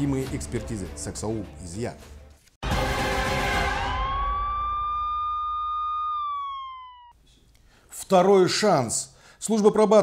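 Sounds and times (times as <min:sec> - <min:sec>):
siren-like tone: 0:02.8 - 0:07.1.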